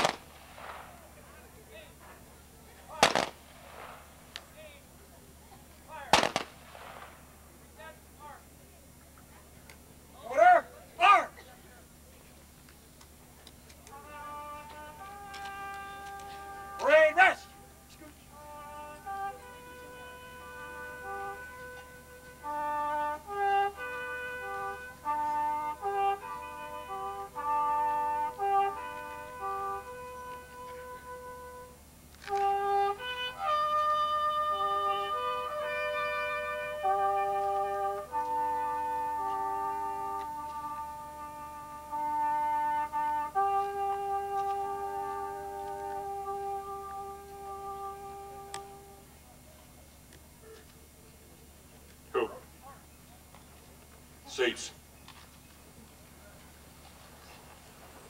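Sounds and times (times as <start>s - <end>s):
slow brass and woodwind music: 0.0s - 7.6s, 13.4s - 49.8s.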